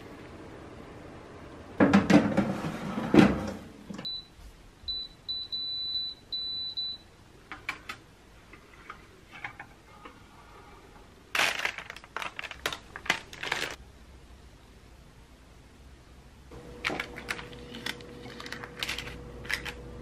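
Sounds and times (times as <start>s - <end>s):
electronic oven beeps: 4.0s - 7.1s
parchment paper rustling: 11.4s - 13.8s, 16.8s - 19.8s.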